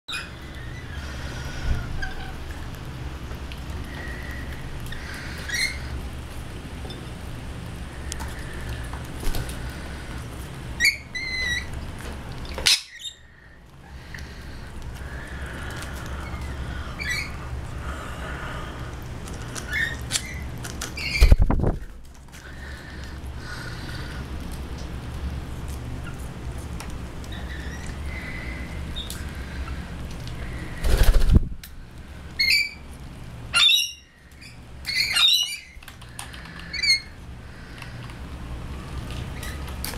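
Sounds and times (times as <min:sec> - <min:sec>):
steady low hum: 0:00.1 - 0:39.9
birds chirping: 0:03.7 - 0:06.0, 0:12.4 - 0:18.8, 0:33.5 - 0:38.2.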